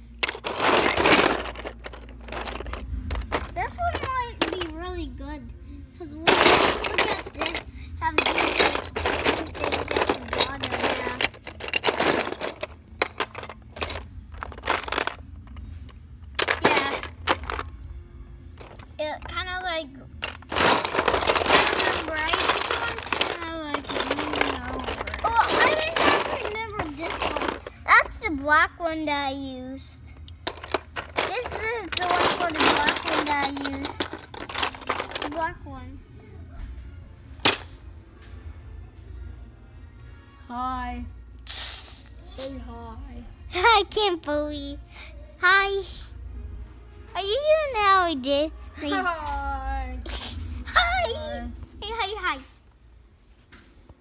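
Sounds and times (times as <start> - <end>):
plastic and metal parts clattering: 0.1 - 4.8, 6.2 - 17.8, 18.6 - 19.5, 20.2 - 28.3, 30.4 - 35.6, 37.4 - 37.8.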